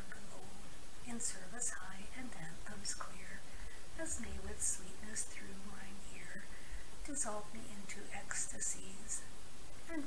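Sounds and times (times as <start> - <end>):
person reading verse aloud: 0.0 - 10.0.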